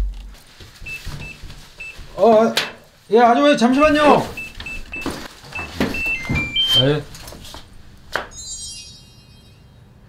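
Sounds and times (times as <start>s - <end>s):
keypad beeps: 0.9s - 2.0s, 3.8s - 7.0s.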